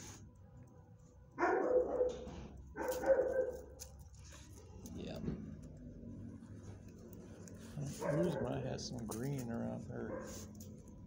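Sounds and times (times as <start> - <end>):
dog barking: 1.4 - 3.7, 8.0 - 8.6, 10.0 - 10.5.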